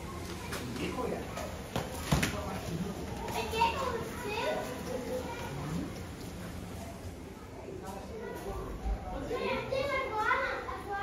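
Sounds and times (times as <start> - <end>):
chatter of visitors: 0.0 - 11.0
children's high voices: 3.2 - 5.8, 9.3 - 11.0.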